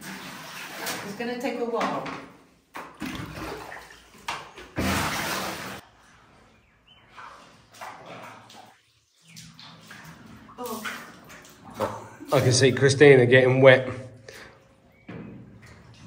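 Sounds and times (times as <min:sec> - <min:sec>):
floodwater sloshing and splashing: 0:00.0 - 0:01.6, 0:02.7 - 0:13.0, 0:14.2 - 0:16.0.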